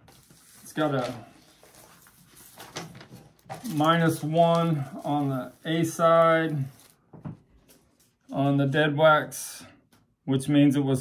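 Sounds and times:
vinyl record sleeve rustling: 0.0s - 8.4s.

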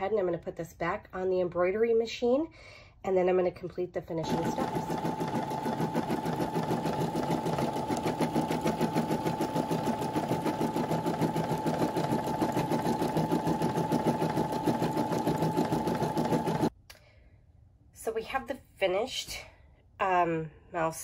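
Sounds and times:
embroidery machine stitching: 4.2s - 16.7s.

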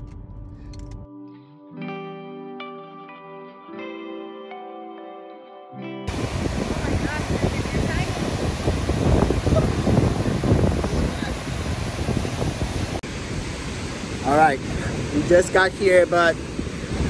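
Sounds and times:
wind buffeting microphone: 6.1s - 17.0s.

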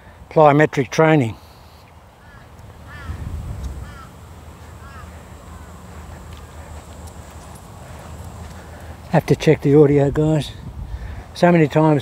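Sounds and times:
bird chirping: 1.4s - 9.1s
wind buffeting microphone: 2.6s - 12.0s.

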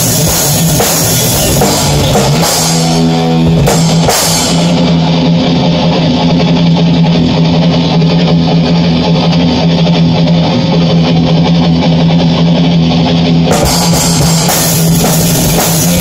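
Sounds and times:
bass guitar: 0.0s - 16.0s
drums: 0.0s - 16.0s
electric guitar heavy metal: 0.0s - 16.0s.

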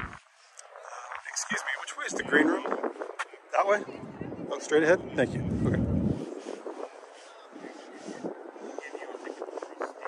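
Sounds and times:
faint outdoor background noise: 0.0s - 10.0s
low rumble: 5.3s - 6.3s.

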